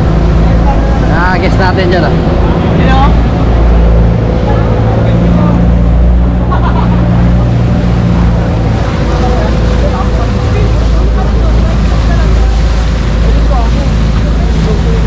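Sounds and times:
boat engine droning: 0.0 - 15.0
water rushing past hull: 0.0 - 15.0.

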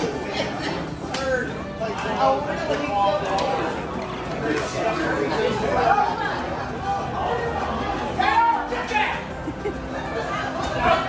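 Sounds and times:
background music: 0.0 - 11.0
people chatting: 0.0 - 11.0.

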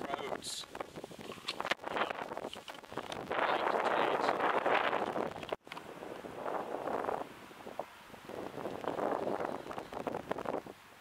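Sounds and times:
wind on microphone: 0.0 - 11.0
camera handling rustle: 1.1 - 3.2.

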